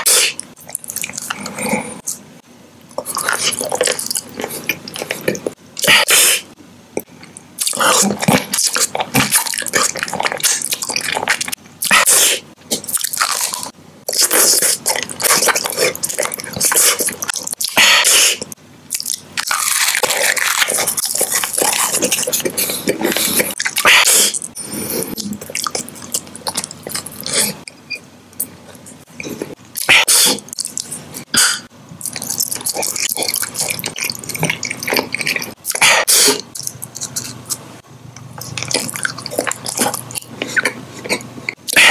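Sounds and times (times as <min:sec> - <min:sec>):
biting and crunching food: 0:00.1 - 0:02.2, 0:02.9 - 0:06.2, 0:07.0 - 0:41.9
gumball being chewed: 0:12.7 - 0:27.8, 0:29.8 - 0:37.6, 0:38.2 - 0:41.9.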